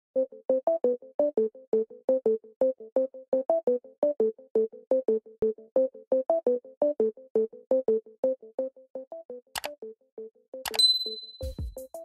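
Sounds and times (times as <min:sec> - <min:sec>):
mouse click sound effect: 0:10.7 - 0:11.5
bright notification ding: 0:10.7 - 0:11.6.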